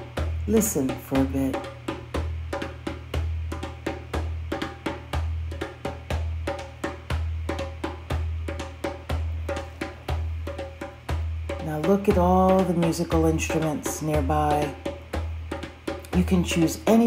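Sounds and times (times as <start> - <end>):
low drum beat: 0.0 - 17.0.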